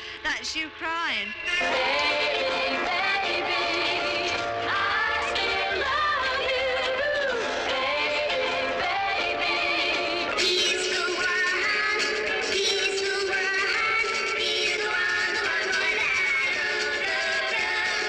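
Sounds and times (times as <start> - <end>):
pop song with lead vocal: 0.9 - 18.0.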